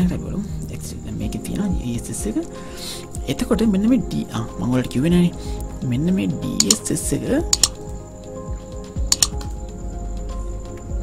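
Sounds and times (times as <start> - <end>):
person talking: 3.2 - 7.7
key presses clicking: 6.6 - 6.8, 7.5 - 7.8, 9.1 - 9.5.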